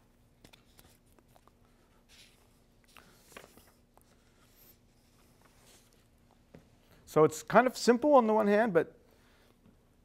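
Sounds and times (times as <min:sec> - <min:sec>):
low room hum: 0:00.0 - 0:10.0
paper sheets rustling: 0:02.1 - 0:06.0.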